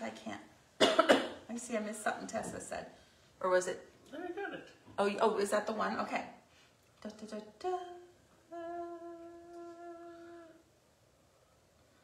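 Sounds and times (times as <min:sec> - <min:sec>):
woman humming a held note: 0:07.7 - 0:10.6.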